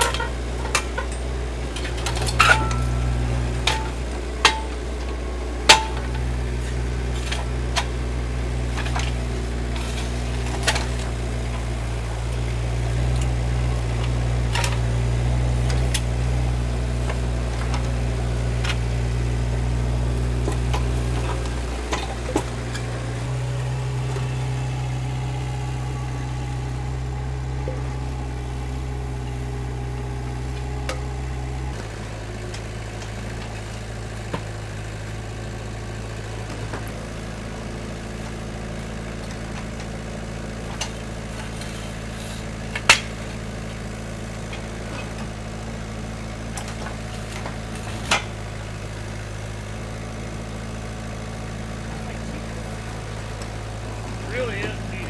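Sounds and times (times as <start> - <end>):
skid steer engine running: 0.0 - 55.0.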